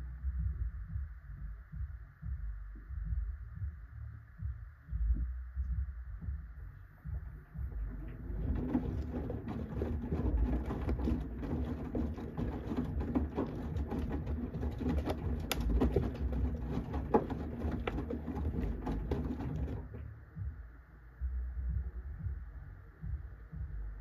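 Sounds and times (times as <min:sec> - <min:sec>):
low drum and motor rumble: 0:00.0 - 0:24.0
washing machine tumbling: 0:07.1 - 0:20.5
water sloshing: 0:07.8 - 0:20.0.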